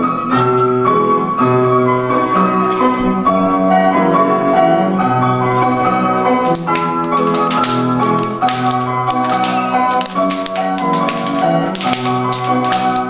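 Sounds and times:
instrumental dance music: 0.0s - 13.0s.

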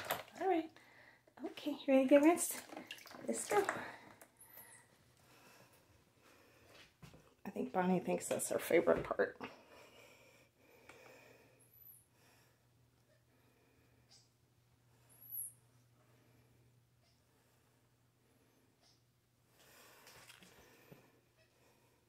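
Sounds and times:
faint room hum: 0.0s - 22.0s.

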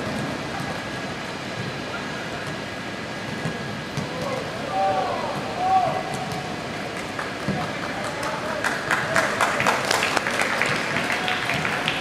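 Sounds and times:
stadium crowd ambience: 0.0s - 12.0s.

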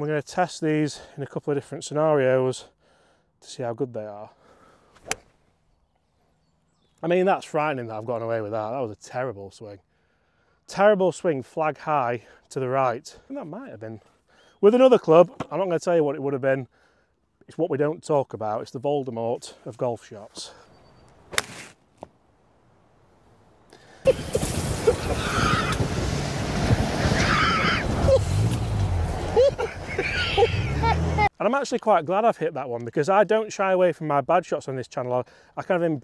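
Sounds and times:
golf club striking ball: 5.0s - 5.2s.

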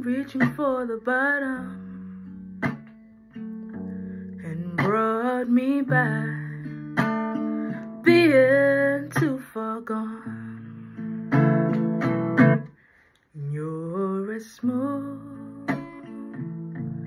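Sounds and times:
woman singing: 0.0s - 2.8s, 4.3s - 11.0s, 13.4s - 17.0s
strummed acoustic guitar: 0.0s - 12.9s, 14.6s - 17.0s.

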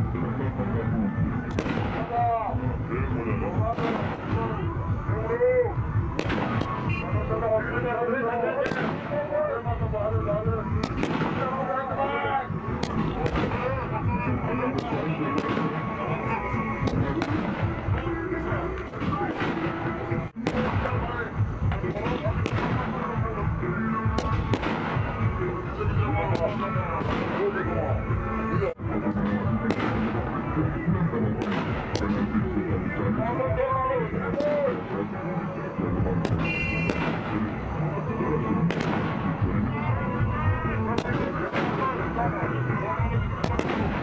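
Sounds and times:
music: 0.0s - 44.0s
voices: 0.0s - 44.0s
short sharp bangs: 8.6s - 9.2s, 36.2s - 37.4s.

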